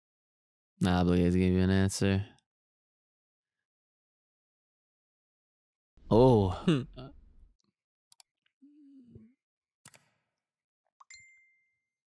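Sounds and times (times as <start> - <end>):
bell-like notification ding: 11.1 - 11.8.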